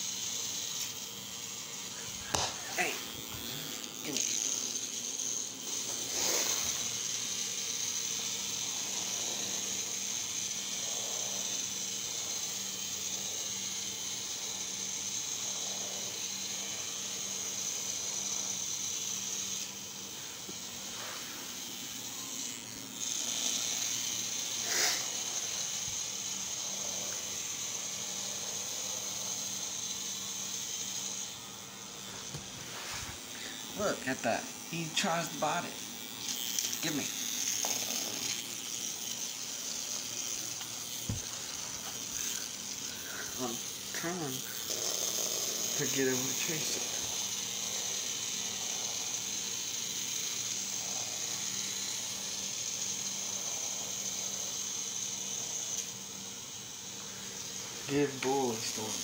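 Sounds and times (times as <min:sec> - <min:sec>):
toy motor whirring: 0:00.0 - 0:59.0.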